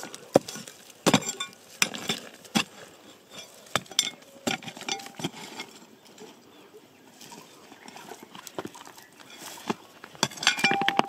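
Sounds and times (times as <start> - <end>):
stick scraping soil and stones: 0.0 - 11.0.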